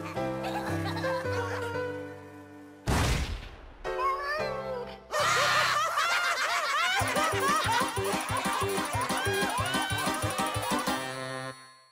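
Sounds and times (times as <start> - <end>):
characters laughing loudly: 5.1 - 11.2
cartoon music: 7.0 - 11.9.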